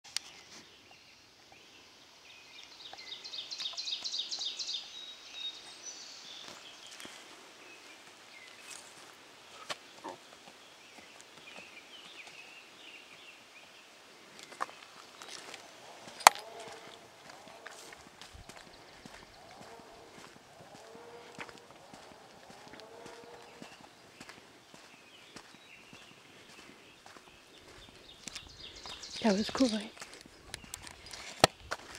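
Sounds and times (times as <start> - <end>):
faint outdoor ambience: 0.1 - 31.9
footsteps on dirt trail: 6.3 - 13.0, 14.3 - 31.9.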